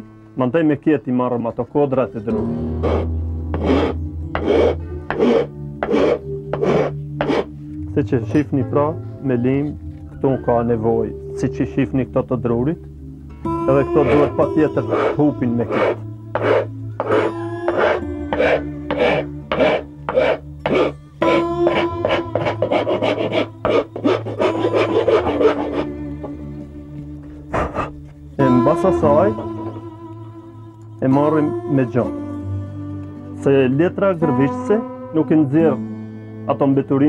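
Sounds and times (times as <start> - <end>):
background music: 0.0 - 37.0
hand file rasping on wood: 2.8 - 7.5, 14.0 - 25.9, 27.5 - 28.0
steel blade scraping wood: 2.8 - 7.5, 14.0 - 25.9.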